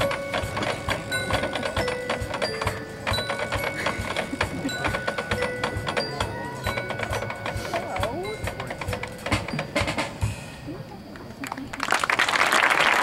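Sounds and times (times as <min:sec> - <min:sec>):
marching band playing: 0:00.0 - 0:10.6
mallet percussion strikes: 0:00.0 - 0:10.7.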